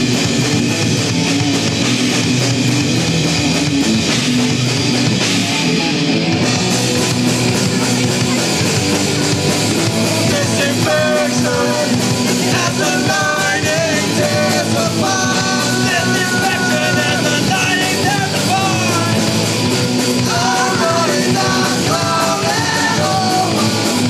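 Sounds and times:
punk rock band playing: 0.0s - 24.0s
person singing: 9.8s - 19.5s, 20.2s - 24.0s.

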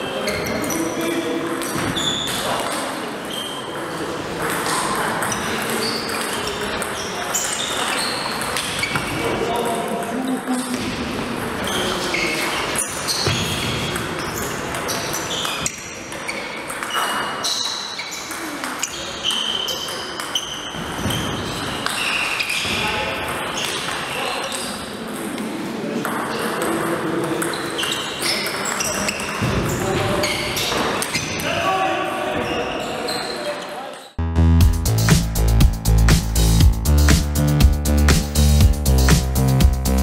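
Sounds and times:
voices in a hall: 0.0s - 34.2s.

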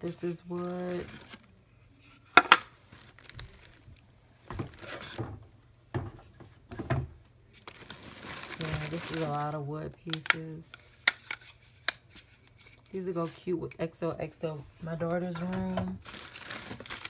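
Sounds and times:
plastic bag crinkling: 0.0s - 1.6s, 2.4s - 5.2s, 7.6s - 10.2s, 16.0s - 17.0s.

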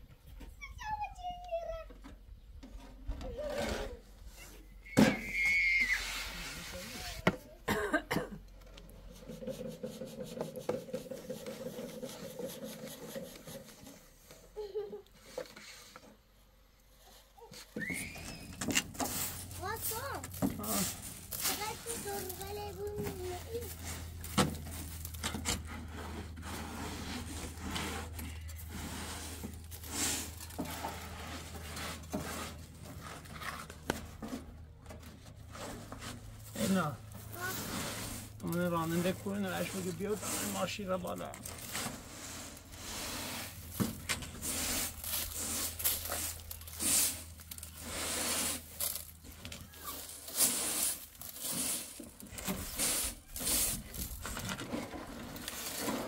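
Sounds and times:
broom sweeping sand on metal: 5.9s - 7.2s, 18.5s - 25.1s, 25.8s - 32.9s, 35.7s - 41.1s, 41.7s - 49.2s, 49.8s - 54.2s.

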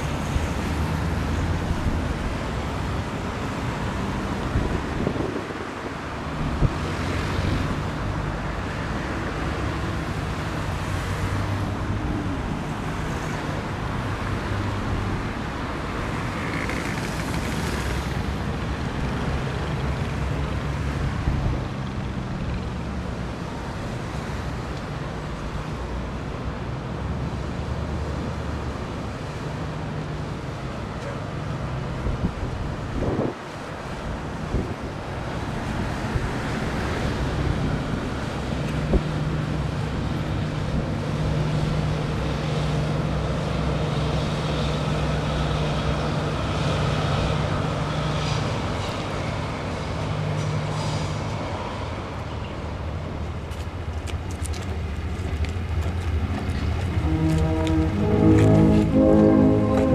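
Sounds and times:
boat engine drone: 0.0s - 59.9s
city traffic hum: 0.0s - 59.9s
wind buffeting microphone: 4.3s - 7.9s, 31.9s - 41.4s.

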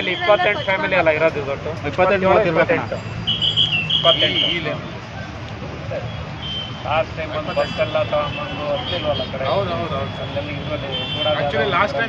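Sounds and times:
people talking: 4.0s - 6.2s, 6.9s - 12.0s.

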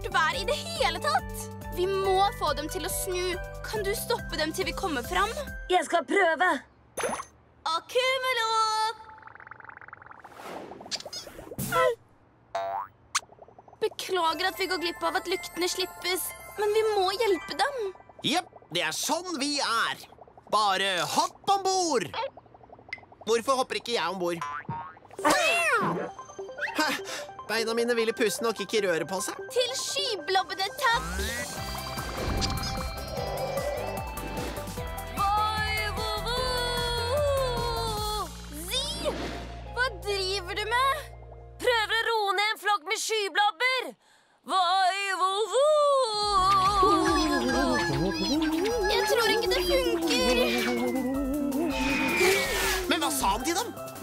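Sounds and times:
background music: 0.0s - 5.9s, 14.0s - 18.6s, 25.2s - 42.5s, 46.3s - 54.0s
cartoon cat crying: 46.7s - 52.3s.

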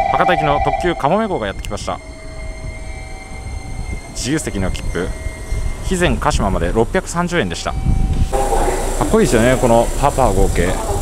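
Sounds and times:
electric train low rumble: 0.0s - 11.0s.

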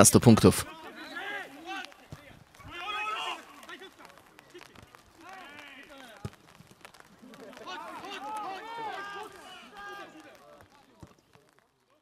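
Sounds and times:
voices shouting and calling out: 0.0s - 11.2s.

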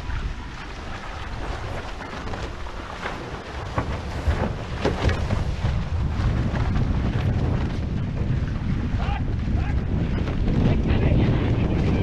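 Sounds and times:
water splashing off hulls: 0.0s - 12.0s
wind buffeting microphone: 0.0s - 12.0s.

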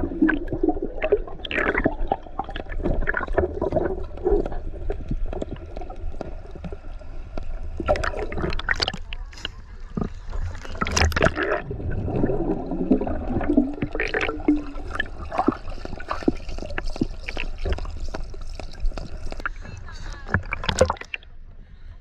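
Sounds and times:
gurgling bubbles underwater: 0.0s - 21.2s
crackling water clicks: 0.0s - 21.3s.

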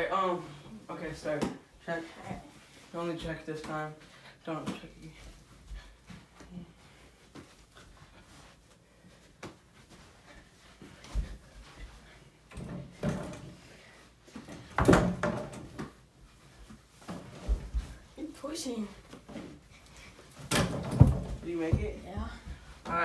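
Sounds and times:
ball hitting backboard and door: 14.6s - 16.0s, 20.5s - 21.8s.

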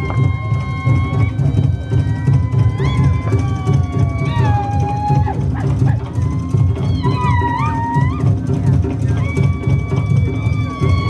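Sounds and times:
fast steady drum beat: 0.0s - 11.0s
shrill high calls: 0.0s - 11.0s.

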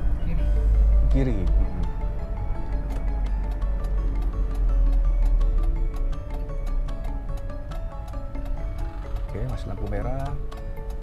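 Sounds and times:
steady low rumble: 0.0s - 6.3s
light ticking percussion: 0.0s - 11.0s
melody of held notes: 0.0s - 11.0s.

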